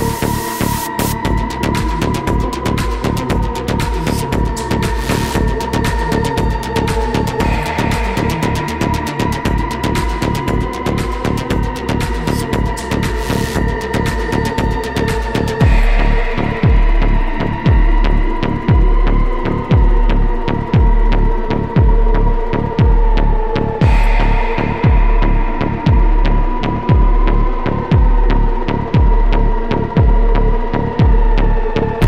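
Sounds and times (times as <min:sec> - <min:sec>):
fast ticking hi-hats: 0:00.0 - 0:32.0
heavy kick drum: 0:00.0 - 0:32.0
sustained synth drone: 0:00.0 - 0:32.0.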